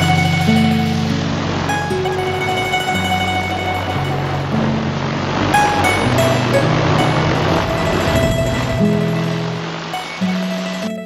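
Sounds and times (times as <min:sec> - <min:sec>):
background music of held notes: 0:00.0 - 0:11.0
drone propellers whirring: 0:02.6 - 0:10.0.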